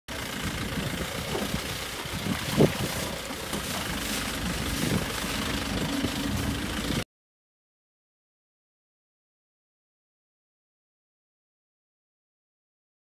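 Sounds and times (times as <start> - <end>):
jeep engine and road noise: 0.1 - 7.0.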